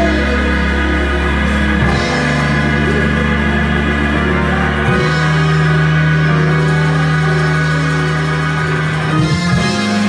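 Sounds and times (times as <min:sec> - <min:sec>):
organ sustained chord: 0:00.0 - 0:10.0.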